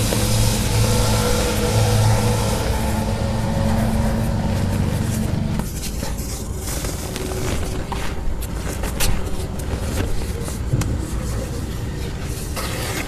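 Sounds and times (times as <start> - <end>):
steady low rumble: 0.0 - 12.6.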